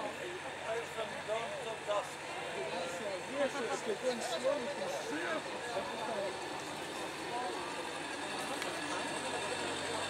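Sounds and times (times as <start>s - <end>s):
people's voices: 0.0s - 10.0s
boat engine running: 5.5s - 10.0s.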